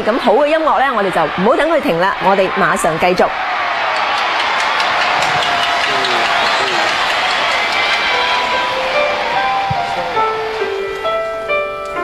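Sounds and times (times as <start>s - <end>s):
audience cheering: 0.0s - 11.5s
keyboard chords: 4.8s - 12.0s.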